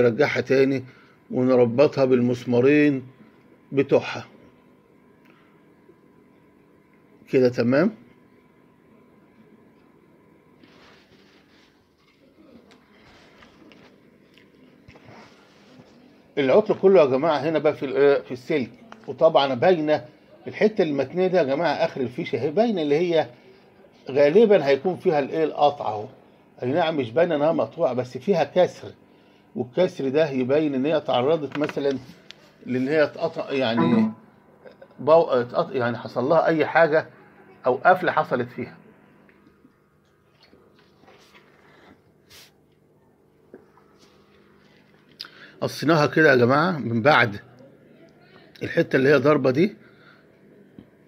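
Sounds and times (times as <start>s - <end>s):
faint steady hum: 0.0s - 51.0s.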